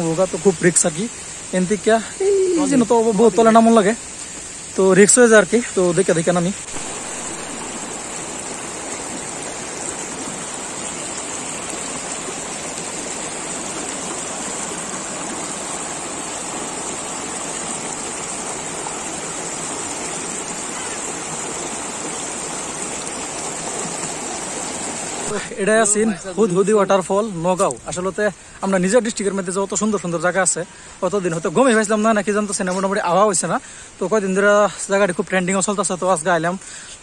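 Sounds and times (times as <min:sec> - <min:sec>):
stream rushing over rocks: 0:00.0 - 0:37.0.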